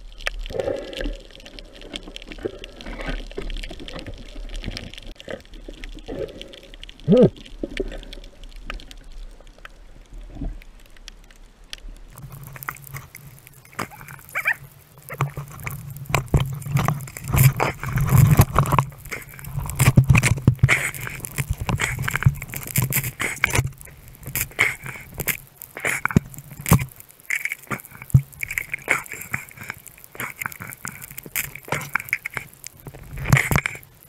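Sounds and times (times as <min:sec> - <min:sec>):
underwater clicks and crackles: 0:00.0 - 0:34.0
water rushing and sloshing: 0:12.1 - 0:34.0.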